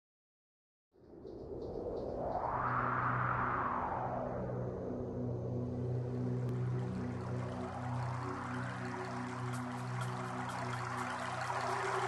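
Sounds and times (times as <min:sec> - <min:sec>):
swell of noise: 0:02.1 - 0:12.0
low sustained drone tones: 0:05.4 - 0:12.0.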